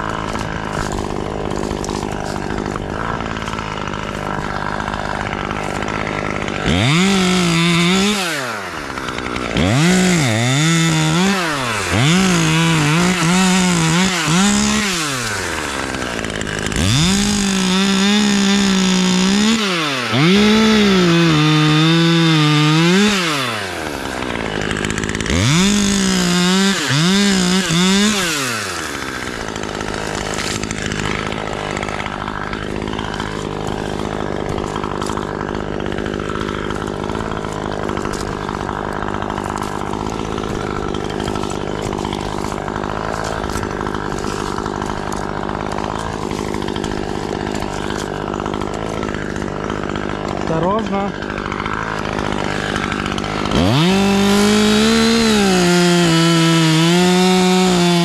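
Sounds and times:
chainsaw revving and idling: 0.0 - 58.0.

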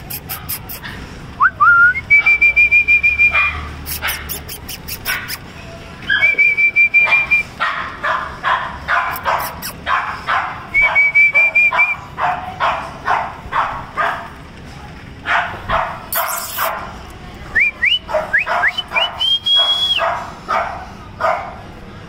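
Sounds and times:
puppies whining and yipping: 0.0 - 7.6, 9.1 - 9.9, 16.1 - 16.8.

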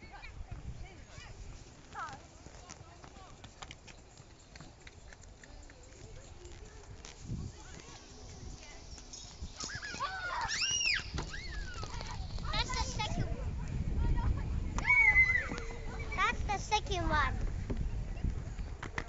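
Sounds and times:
low rumble of handling or wind: 0.0 - 19.0
high-pitched squeal: 7.8 - 12.5.

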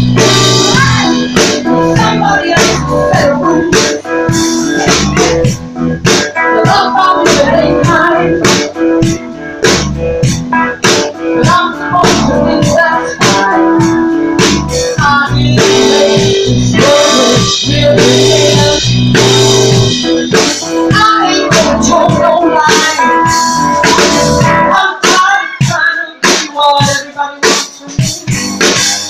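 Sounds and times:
drum kit with cymbal hits: 0.0 - 29.0
electric guitar: 0.0 - 29.0
keyboard: 0.0 - 29.0
live blues band playing: 0.0 - 29.0.

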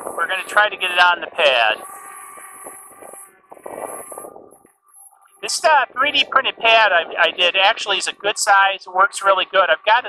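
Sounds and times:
drone propellers buzzing: 0.0 - 10.0.

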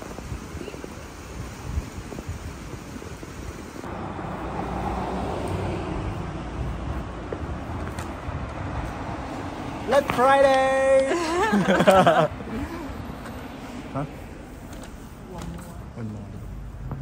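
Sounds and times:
wind outdoors: 0.0 - 17.0
car traffic driving: 3.6 - 17.0.

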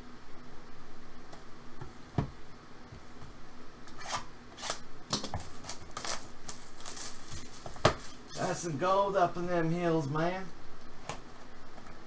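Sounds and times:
papery scrapes and rustles: 5.5 - 8.2.

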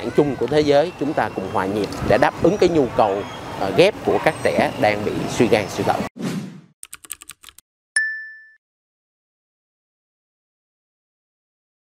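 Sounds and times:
bright ding: 8.0 - 8.6.

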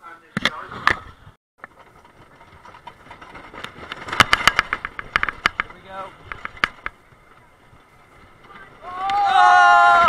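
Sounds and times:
roller coaster chain lift rumble: 1.6 - 10.0.

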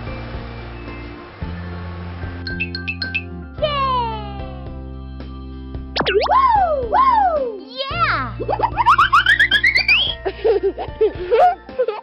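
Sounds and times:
cartoon music backing: 2.4 - 4.9, 5.9 - 12.0
rising chirps: 2.5 - 3.4, 6.0 - 6.9, 8.4 - 10.2
swooping pitch slides: 6.0 - 7.0, 8.4 - 10.2.

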